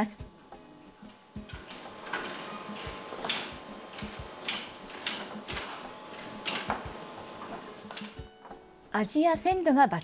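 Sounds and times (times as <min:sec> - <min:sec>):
machine roller conveyor clatter: 0:01.1 - 0:08.6.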